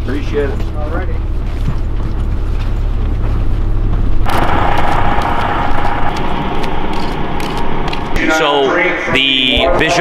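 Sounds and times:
bus engine and road rumble: 0.0s - 10.0s
faint hum: 1.2s - 9.6s.

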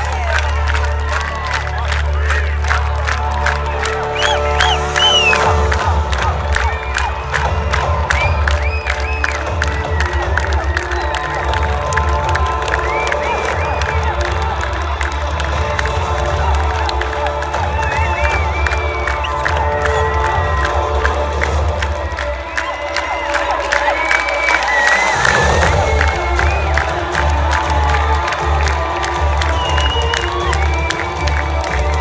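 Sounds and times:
crowd cheering and clapping: 0.0s - 32.0s.

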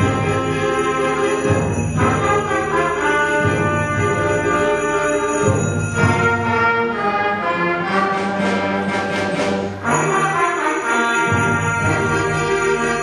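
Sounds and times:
percussion shimmer: 0.0s - 6.8s, 8.8s - 13.0s
concert band playing chords: 0.0s - 6.9s, 7.9s - 13.0s.

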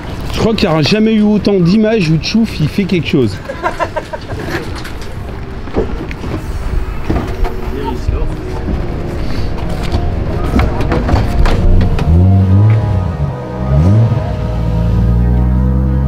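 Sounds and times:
voices: 0.3s - 9.0s
background music: 5.1s - 16.0s.

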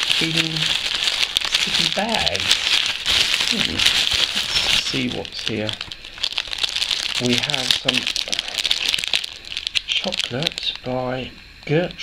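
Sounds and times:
wrappers crinkling: 0.0s - 11.0s.

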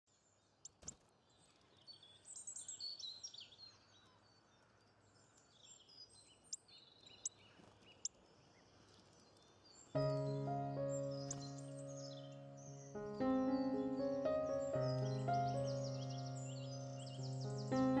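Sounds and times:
faint birdsong: 0.1s - 18.0s.

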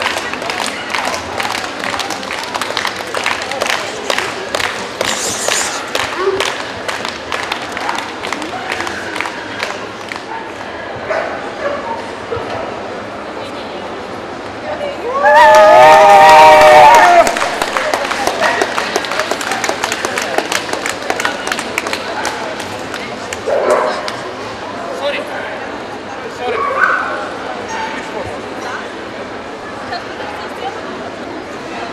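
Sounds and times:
crowd chatter: 0.0s - 31.9s.

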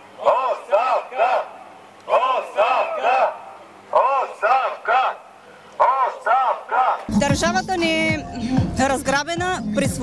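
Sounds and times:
protesters chanting in unison: 0.0s - 7.2s.

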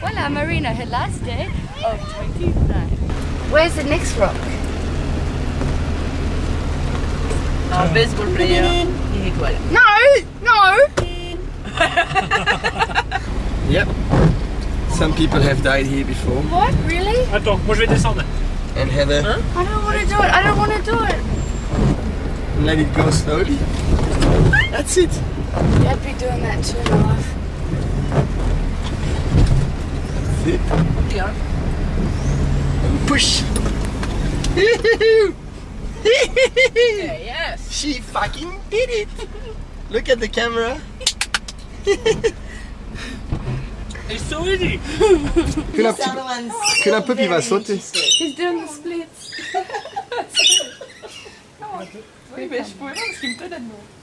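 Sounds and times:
people talking indistinctly: 0.0s - 5.0s, 7.2s - 27.4s, 43.8s - 53.9s
vehicle jolting thuds: 0.0s - 19.2s, 19.8s - 36.9s, 41.9s - 45.8s
vehicle engine running at low speed: 0.0s - 46.0s
people laughing: 11.6s - 13.3s, 34.5s - 35.4s, 36.0s - 37.2s, 41.8s - 42.4s, 44.8s - 45.8s, 49.2s - 52.0s.

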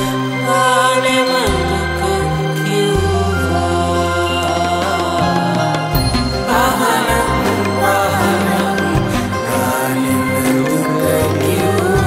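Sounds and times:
devotional song singing: 0.0s - 12.0s
instrumental backing with bass notes: 0.0s - 12.0s.

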